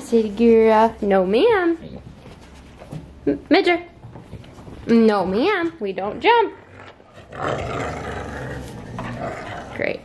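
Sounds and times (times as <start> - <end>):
dog growling: 6.2 - 10.0.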